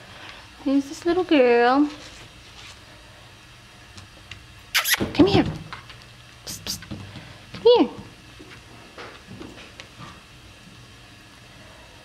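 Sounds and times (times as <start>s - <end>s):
person hissing psst: 4.8s - 5.1s, 6.5s - 6.9s.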